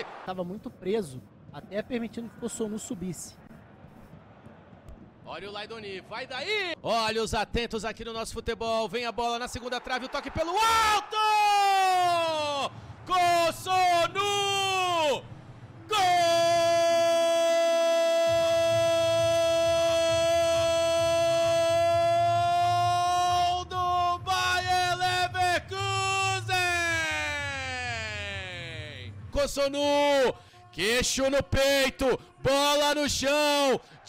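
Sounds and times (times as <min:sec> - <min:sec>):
commentator shouting goal call: 0:10.2 - 0:15.2, 0:15.9 - 0:30.3.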